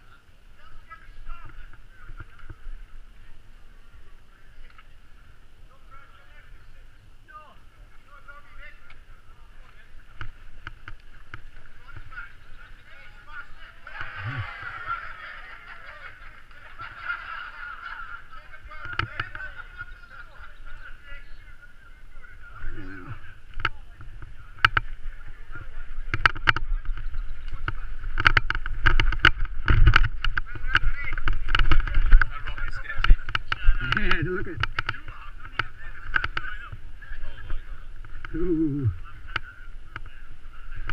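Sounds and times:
low microphone rumble: 0:09.0 - 0:15.3
mountain bike rattling and knocking: 0:23.6 - 0:38.3.

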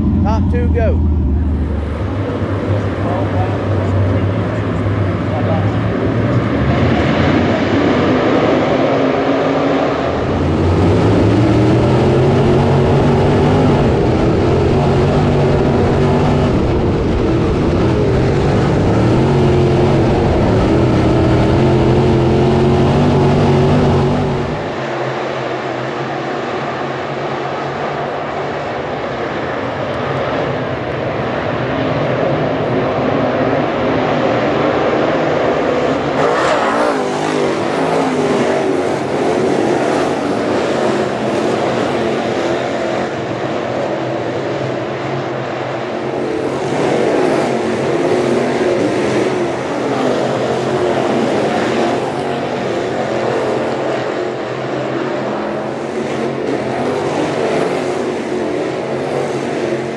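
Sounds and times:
distant engine drone: 0:00.0 - 0:59.9
race car engines: 0:00.0 - 0:59.9.

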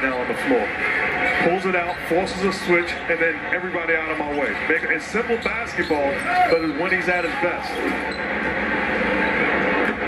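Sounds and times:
basketball broadcast on television: 0:00.0 - 0:10.0.

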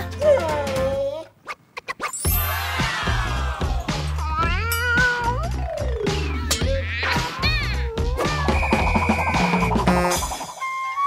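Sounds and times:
background music with steady beat: 0:02.3 - 0:11.0
cat meowing: 0:04.2 - 0:05.5, 0:06.4 - 0:08.5.

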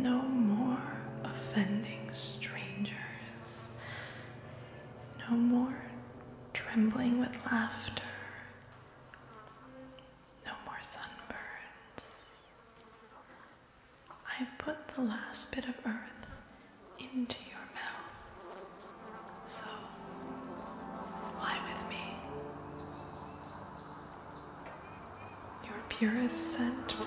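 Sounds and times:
woman whispering: 0:06.6 - 0:08.6, 0:10.4 - 0:12.6, 0:14.2 - 0:16.4, 0:17.0 - 0:18.2, 0:19.5 - 0:20.0, 0:21.2 - 0:22.4, 0:25.6 - 0:27.0
faint steady tone: 0:14.3 - 0:27.0.

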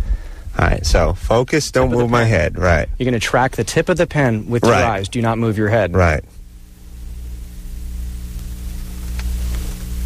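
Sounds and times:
faint ticks: 0:08.3 - 0:10.0.

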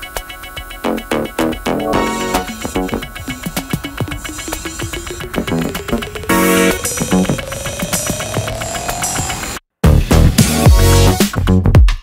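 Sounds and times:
glitch electronic music: 0:00.8 - 0:09.6.

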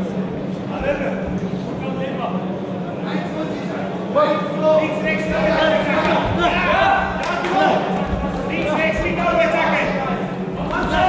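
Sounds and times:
steady low hum: 0:00.0 - 0:11.0
men shouting in echoing hall: 0:04.1 - 0:11.0.

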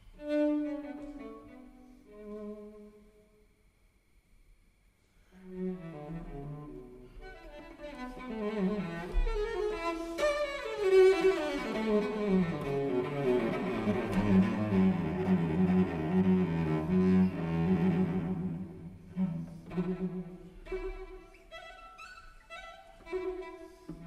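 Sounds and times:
bowed cello playing: 0:00.2 - 0:03.0, 0:05.3 - 0:24.0.

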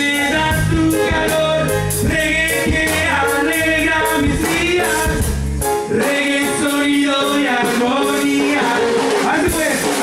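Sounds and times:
live rock band playing: 0:00.0 - 0:10.0
man singing: 0:00.0 - 0:10.0.

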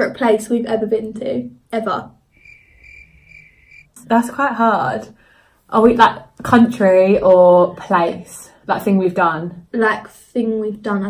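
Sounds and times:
cricket chirping: 0:02.3 - 0:03.9.

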